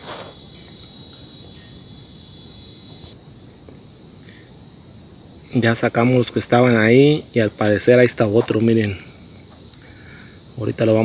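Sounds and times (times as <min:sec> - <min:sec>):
faint insect hum: 0:00.0 - 0:11.0
insects buzzing: 0:00.0 - 0:11.0.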